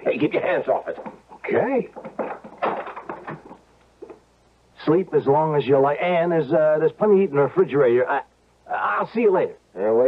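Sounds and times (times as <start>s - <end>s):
knocks and bumps: 0.8s - 4.3s.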